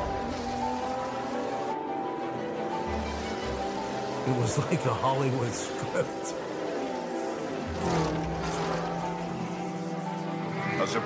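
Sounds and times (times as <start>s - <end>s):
racing car engine passing: 0.0s - 11.0s.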